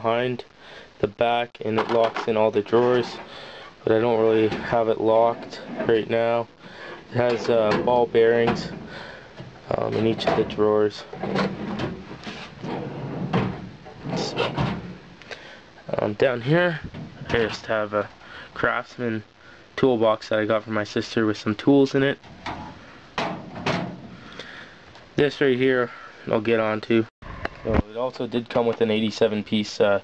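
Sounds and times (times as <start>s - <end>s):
metal drawers sliding: 4.3s - 15.0s, 22.2s - 24.2s
metal cabinet doors clunking shut: 7.2s - 15.0s, 22.4s - 24.2s.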